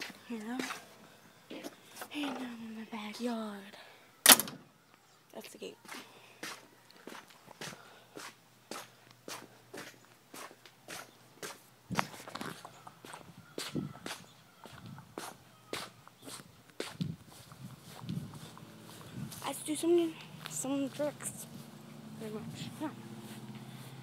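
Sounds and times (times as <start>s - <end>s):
footsteps walking: 0.0s - 2.1s, 5.4s - 24.0s.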